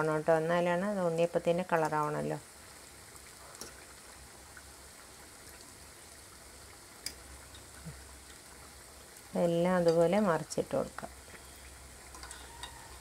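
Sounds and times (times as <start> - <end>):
oil sizzling and bubbling: 0.0 - 13.0.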